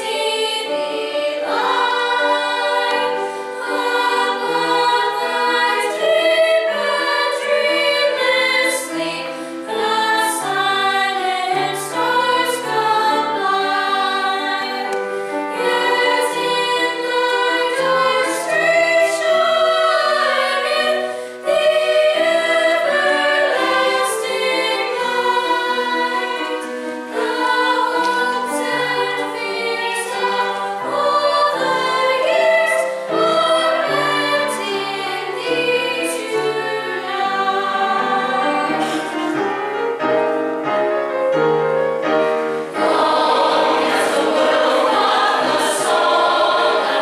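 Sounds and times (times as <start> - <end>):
choir singing in harmony: 0.0 - 47.0.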